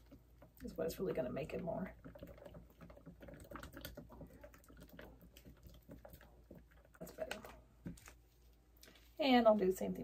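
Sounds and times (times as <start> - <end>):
stir stick scraping plastic cup: 0.0 - 8.2.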